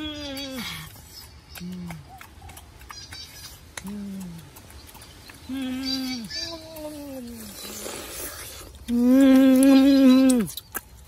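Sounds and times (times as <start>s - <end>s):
boy humming while eating: 8.8s - 10.6s.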